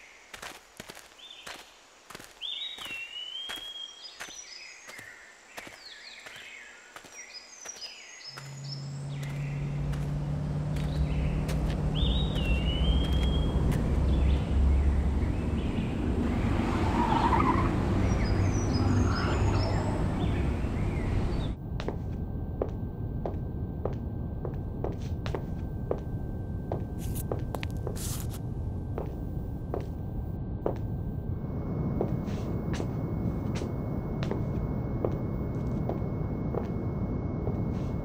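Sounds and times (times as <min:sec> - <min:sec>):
birds chirping: 0:01.1 - 0:38.0
low rumble: 0:08.4 - 0:16.7, 0:17.7 - 0:38.0.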